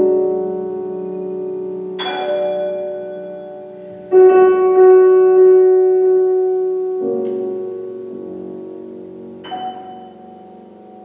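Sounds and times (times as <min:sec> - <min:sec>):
grand piano notes ringing: 0:00.0 - 0:11.0.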